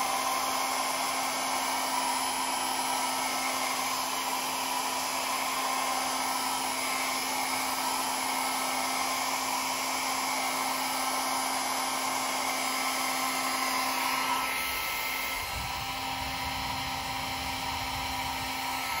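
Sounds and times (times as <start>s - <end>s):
hair dryer running: 0.0s - 19.0s.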